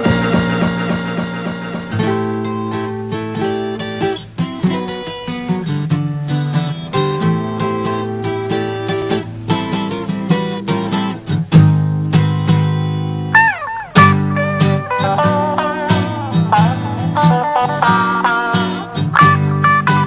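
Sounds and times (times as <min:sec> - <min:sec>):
electric guitar sliding note: 0:00.0 - 0:03.8
pop-rock band playing: 0:00.0 - 0:03.8, 0:13.4 - 0:20.0.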